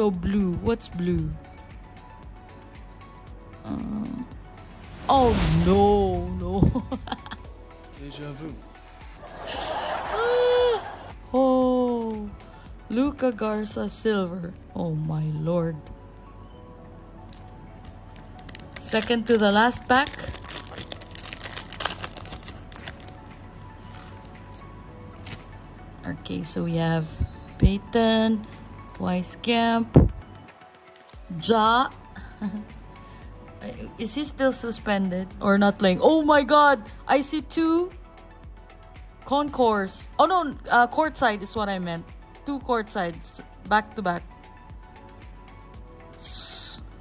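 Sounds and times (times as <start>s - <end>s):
faint background music: 0.0s - 47.0s
foil card pack crinkling: 17.3s - 25.5s.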